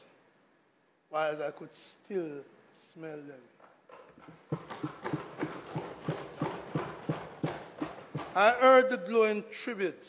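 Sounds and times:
desks thumped in rhythm: 3.9s - 8.8s.

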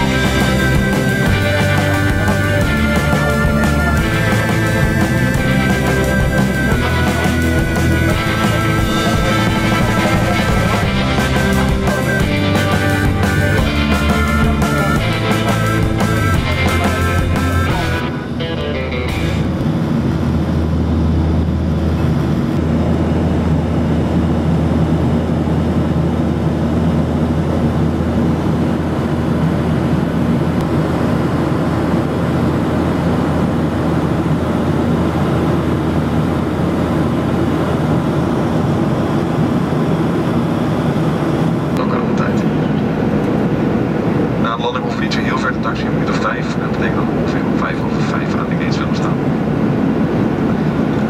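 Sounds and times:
background music: 0.0s - 19.6s
jet engine cabin drone: 0.0s - 51.0s.

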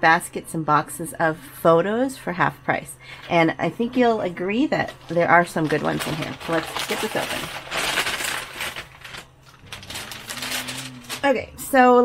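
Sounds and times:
paper photographs being shuffled: 5.0s - 11.4s
soft paper rustling: 5.5s - 11.3s.

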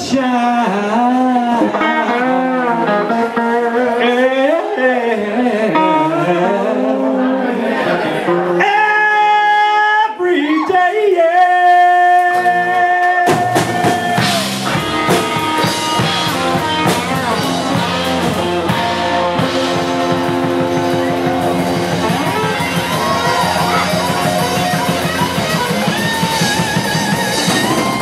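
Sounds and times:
rock band playing: 0.0s - 7.3s, 12.3s - 28.0s.

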